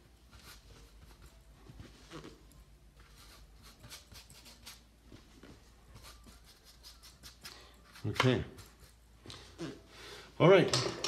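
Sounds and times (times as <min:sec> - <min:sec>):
paintbrush strokes on canvas: 0:00.0 - 0:09.9.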